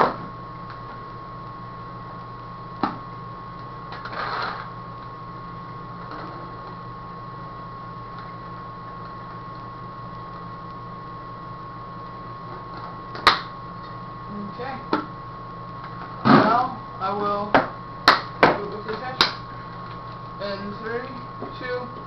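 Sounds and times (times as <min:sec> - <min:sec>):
steady hum: 0:00.0 - 0:22.0
thin high whine: 0:00.0 - 0:22.0.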